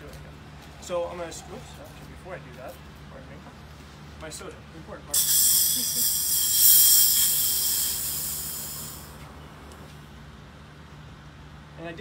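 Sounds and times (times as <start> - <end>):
gas hissing into soda siphon: 5.1 - 9.2.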